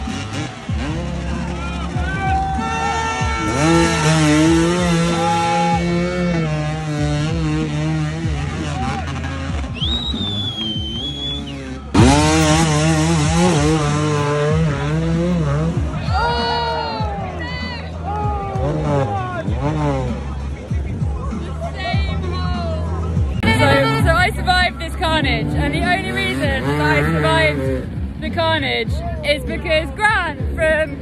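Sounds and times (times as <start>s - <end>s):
motorcycle engines revving hard: 0.0s - 31.0s.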